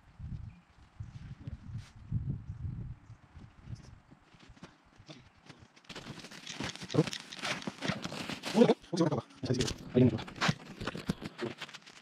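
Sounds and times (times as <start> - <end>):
quiet outdoor background: 0.0 - 12.0.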